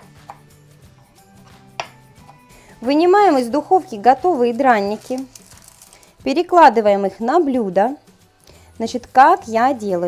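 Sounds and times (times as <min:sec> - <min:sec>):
knife chopping on wooden board: 0:00.0 - 0:00.6, 0:01.4 - 0:02.4.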